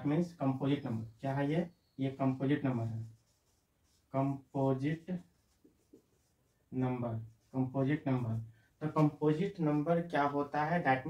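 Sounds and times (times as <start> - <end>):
man talking: 0.0 - 3.1, 4.1 - 5.3, 6.7 - 11.0
marker pen writing on whiteboard: 0.0 - 9.9.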